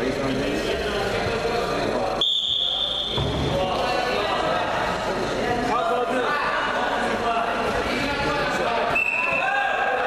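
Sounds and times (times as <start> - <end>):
background voices in a hall: 0.0 - 10.0
referee's whistle blast: 2.2 - 3.2.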